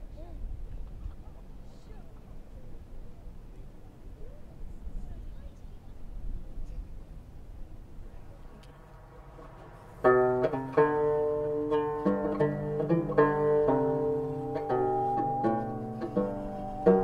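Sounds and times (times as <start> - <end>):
banjo picking: 10.0 - 17.0
bowed singing saw: 10.1 - 17.0.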